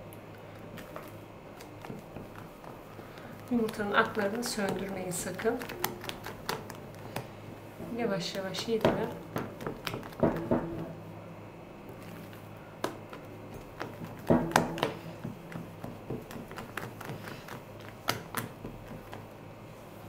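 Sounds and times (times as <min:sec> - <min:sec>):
soft wet squishing: 0:00.0 - 0:10.2.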